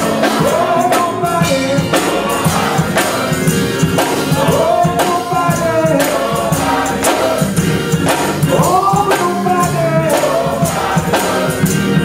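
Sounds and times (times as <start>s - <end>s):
live church music: 0.0s - 12.0s
man singing gospel: 0.0s - 12.0s
steady percussion beat: 0.0s - 12.0s.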